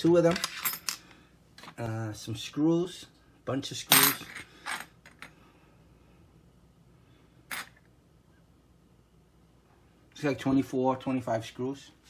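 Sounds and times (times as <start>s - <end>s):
metal screws clinking on wood floor: 0.2s - 1.1s, 7.5s - 7.8s.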